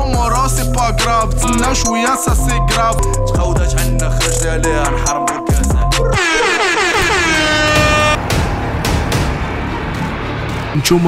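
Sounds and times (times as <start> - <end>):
air horn sound effect: 6.1 - 8.2.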